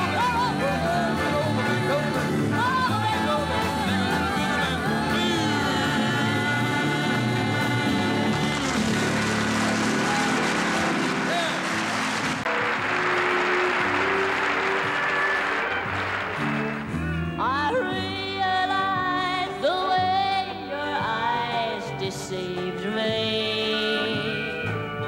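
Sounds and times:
woman singing: 0.0s - 8.9s, 17.4s - 24.8s
live band playing: 0.0s - 25.0s
audience applause: 8.0s - 17.0s.

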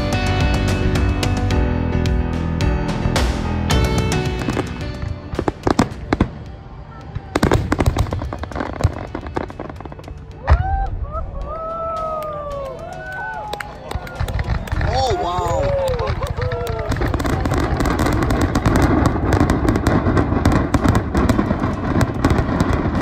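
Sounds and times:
background music: 0.0s - 23.0s
fireworks bangs and crackling: 2.7s - 23.0s.

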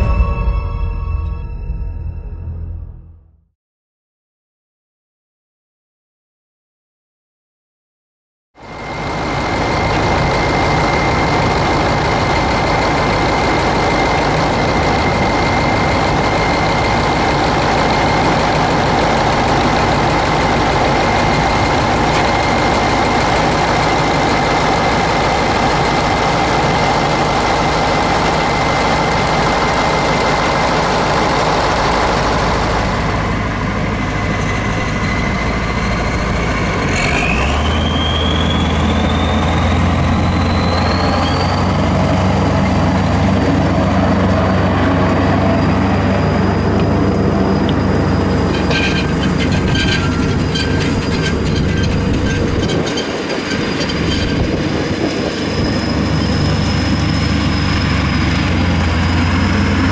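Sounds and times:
high whine: 0.0s - 3.4s, 8.6s - 59.7s
diesel tractor engine running: 8.6s - 59.9s.

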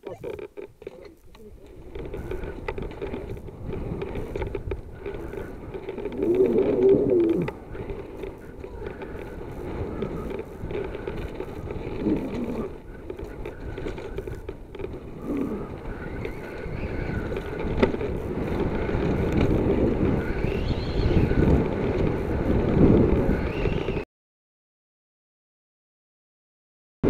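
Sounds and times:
tyres rolling over dirt: 0.0s - 24.0s
bike knocks and rattles: 0.1s - 23.6s
wind buffeting microphone: 0.1s - 24.0s.

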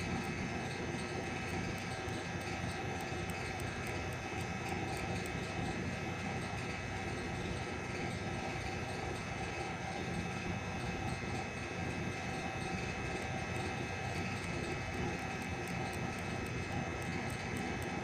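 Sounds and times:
steady mechanical hum: 0.0s - 18.0s.

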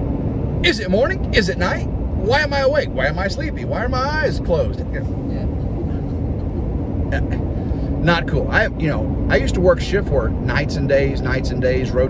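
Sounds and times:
vehicle road and engine rumble: 0.0s - 12.0s.

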